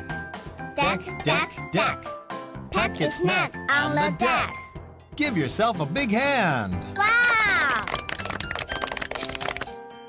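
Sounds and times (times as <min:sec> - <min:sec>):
light background music: 0:00.0 - 0:10.0
hands clapping: 0:07.0 - 0:09.8.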